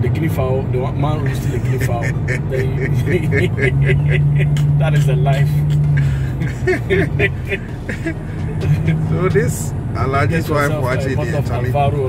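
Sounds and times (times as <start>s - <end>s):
car cabin drone: 0.0s - 12.0s
people talking and laughing: 1.0s - 12.0s.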